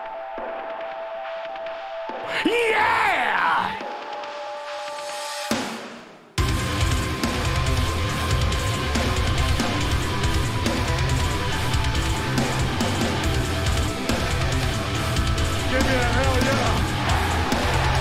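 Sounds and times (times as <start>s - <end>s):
rock band with distorted guitars: 6.4s - 18.0s.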